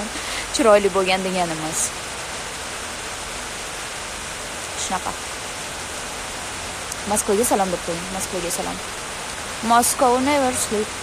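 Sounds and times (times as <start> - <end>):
woman's voice: 0.0 - 1.9, 4.8 - 5.2, 6.9 - 8.8, 9.6 - 11.0
steady hiss: 0.0 - 11.0.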